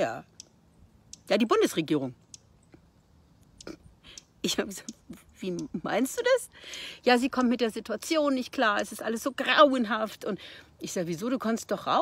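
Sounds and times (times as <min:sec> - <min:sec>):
woman talking: 0:01.3 - 0:02.2, 0:04.4 - 0:12.0
faint clicks: 0:03.4 - 0:05.8.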